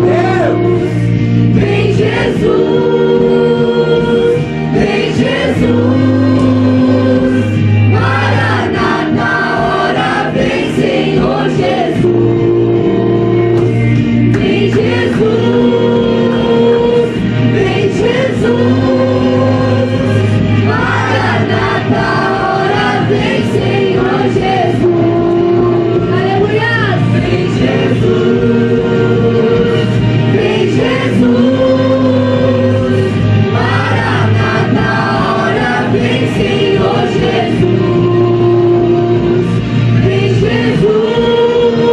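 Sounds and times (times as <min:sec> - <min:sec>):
group singing gospel song: 0:00.0 - 0:41.9
low musical accompaniment: 0:00.0 - 0:41.9.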